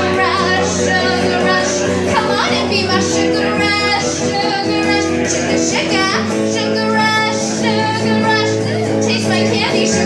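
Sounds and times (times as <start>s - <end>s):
strummed electric guitar: 0.0s - 10.0s
woman singing: 0.0s - 10.0s.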